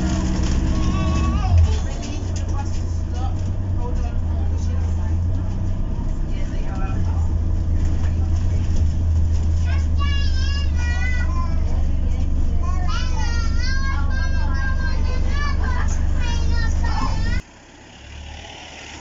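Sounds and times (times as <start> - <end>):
passengers chattering: 0.0 - 17.4
bus drivetrain and road hum: 0.0 - 19.0.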